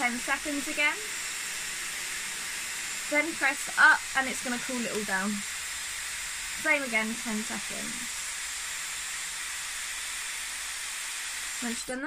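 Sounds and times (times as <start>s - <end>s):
hair styler blowing hot air: 0.0s - 12.0s.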